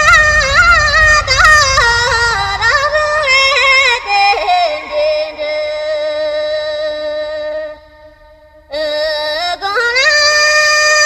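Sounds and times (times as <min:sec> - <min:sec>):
solo voice singing with music: 0:00.0 - 0:11.0.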